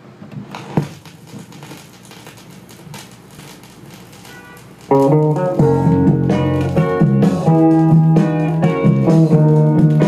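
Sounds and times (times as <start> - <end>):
record hiss: 0.0 - 10.0
vinyl record crackle and pops: 0.2 - 10.0.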